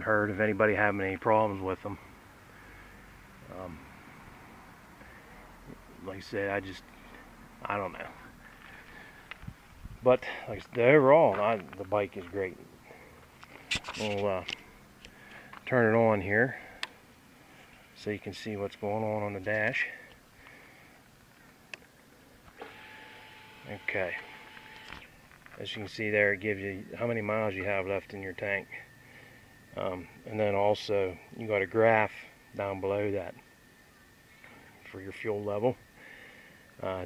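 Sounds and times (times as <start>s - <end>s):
fuel pump humming and whining: 22.4s - 33.5s, 34.3s - 37.0s.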